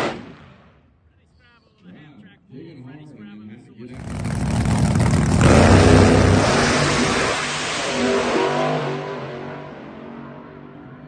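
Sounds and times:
drag racing cars launching: 0:03.9 - 0:11.0.

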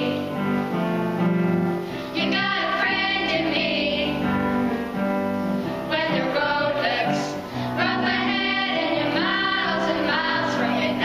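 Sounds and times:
children singing together: 0:00.0 - 0:00.4, 0:02.1 - 0:04.4, 0:05.9 - 0:11.0.

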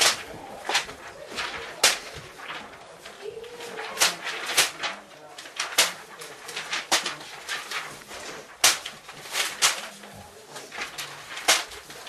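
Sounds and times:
paper swishes and rustles: 0:00.0 - 0:12.0.

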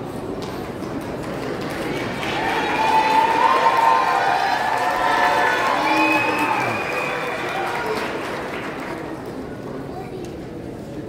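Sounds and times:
audience applauding and cheering: 0:01.2 - 0:09.5.

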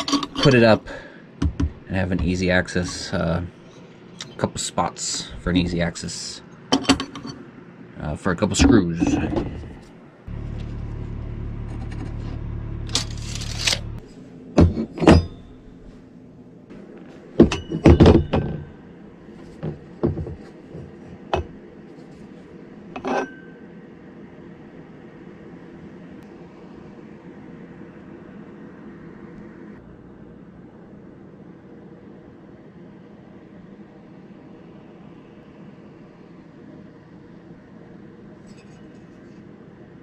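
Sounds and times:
metal tools knocking and clinking: 0:00.0 - 0:00.6, 0:06.7 - 0:07.4, 0:14.6 - 0:15.7, 0:17.4 - 0:18.7
steady low hum: 0:00.0 - 0:40.0.

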